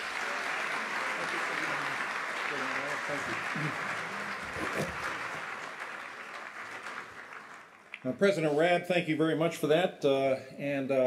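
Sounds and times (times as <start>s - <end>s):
audience applauding: 0.0s - 8.3s.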